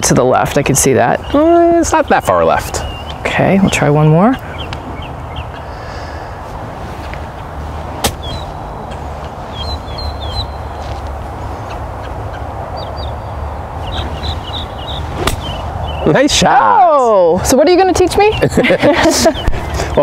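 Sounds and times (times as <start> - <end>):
bird chirps: 1.2 - 6.3, 8.2 - 11.0, 11.6 - 16.2
golf club striking ball: 8.0 - 8.5, 15.1 - 16.0.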